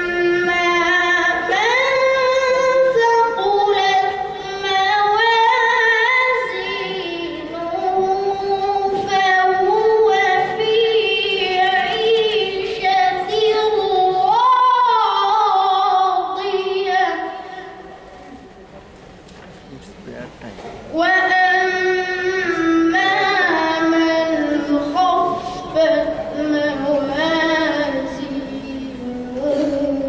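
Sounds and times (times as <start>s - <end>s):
boy chanting melodically: 0.0s - 18.2s, 19.8s - 30.0s.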